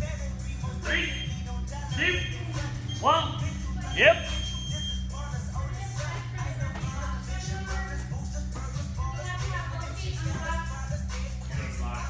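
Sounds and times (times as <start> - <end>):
background music: 0.0 - 12.0
long high beep: 1.0 - 5.1.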